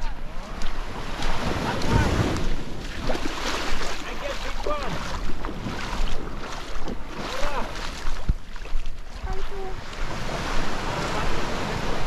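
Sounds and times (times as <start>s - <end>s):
small waves on sand beach: 0.0s - 12.0s
wind buffeting microphone: 0.0s - 12.0s.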